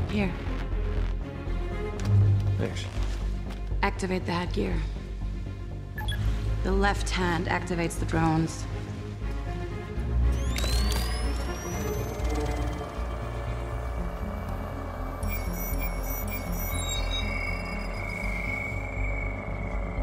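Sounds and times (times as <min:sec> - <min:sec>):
dark film score drone: 0:00.0 - 0:20.0
high electronic chirps: 0:10.3 - 0:20.0
rising electronic whine: 0:10.3 - 0:20.0
thin steady high tone: 0:10.4 - 0:20.0.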